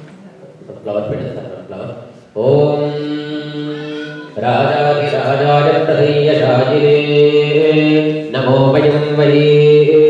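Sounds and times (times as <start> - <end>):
soft voices: 2.1 - 5.2
person chanting a long note: 2.5 - 7.7.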